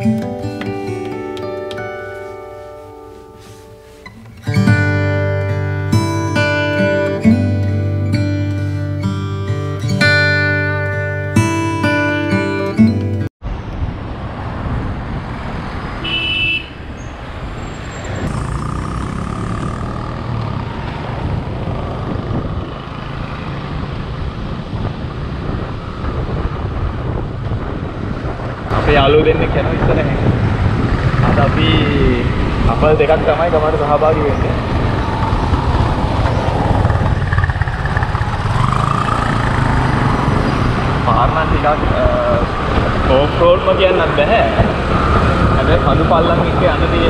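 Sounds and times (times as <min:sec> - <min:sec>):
road and wind noise: 0:00.0 - 0:47.0
scooter engine running: 0:18.2 - 0:23.8, 0:35.0 - 0:41.0.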